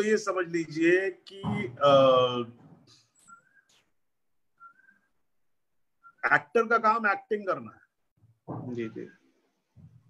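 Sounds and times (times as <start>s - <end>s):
faint rising whistle tones: 3.2s - 3.8s, 4.6s - 5.2s.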